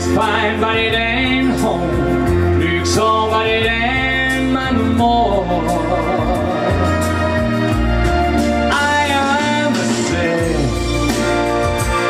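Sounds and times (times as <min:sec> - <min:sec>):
country music backing track: 0:00.0 - 0:12.0.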